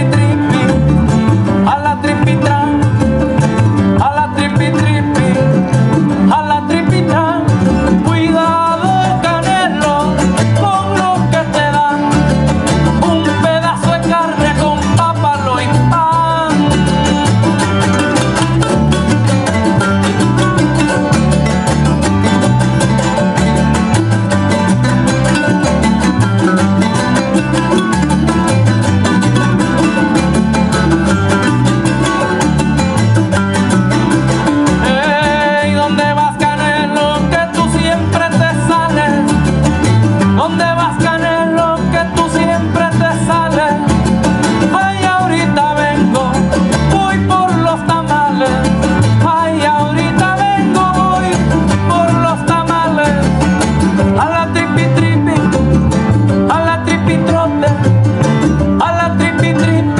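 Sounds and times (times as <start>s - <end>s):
higher melody line: 0.0s - 59.9s
plucked upright bass: 0.0s - 59.9s
strummed guitars in driving rhythm: 0.0s - 59.9s.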